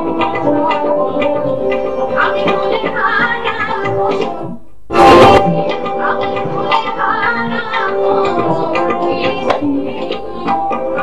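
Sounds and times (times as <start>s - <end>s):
instrumental accompaniment: 0.0s - 11.0s
woman singing into microphone: 0.0s - 11.0s.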